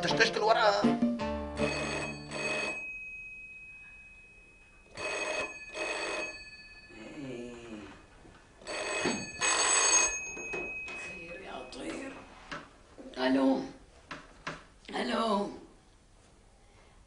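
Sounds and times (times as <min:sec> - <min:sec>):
telephone bell ringing: 0:01.6 - 0:12.4.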